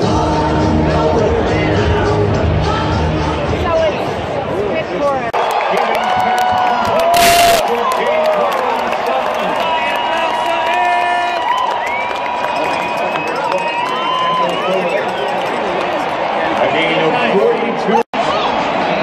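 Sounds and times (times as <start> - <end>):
stadium crowd cheering: 5.3 - 19.0
rush of noise on microphone: 7.1 - 7.6.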